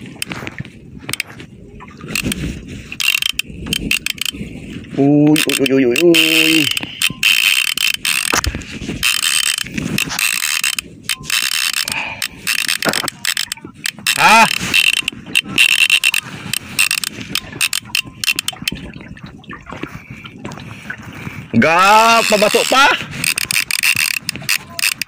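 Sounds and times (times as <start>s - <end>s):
fishing reel whirring and clicking: 1.0s - 18.9s, 21.5s - 25.0s.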